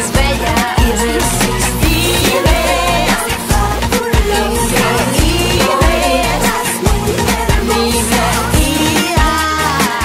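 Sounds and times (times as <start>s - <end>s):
women singing pop song: 0.0s - 10.0s
steady drum beat: 0.1s - 9.4s.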